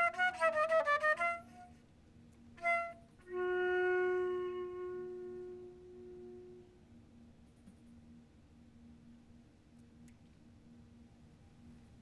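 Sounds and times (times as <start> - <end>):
held flute note: 0.0 - 1.9, 2.6 - 6.9.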